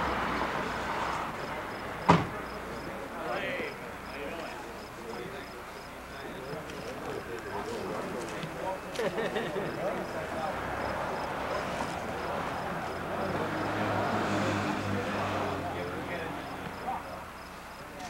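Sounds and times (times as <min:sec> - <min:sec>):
people chattering outdoors: 0:00.0 - 0:18.0.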